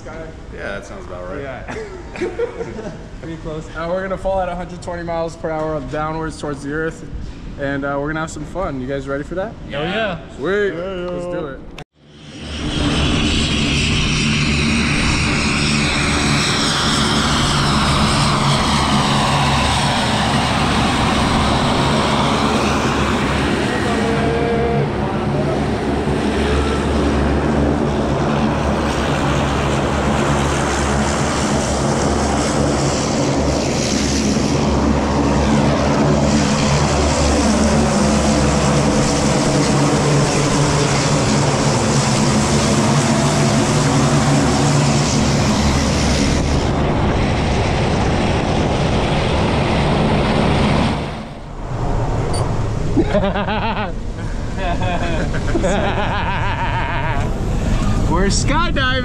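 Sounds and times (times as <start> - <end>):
propeller aircraft engine running: 11.9 - 59.0
whine sliding down in pitch: 50.3 - 53.1.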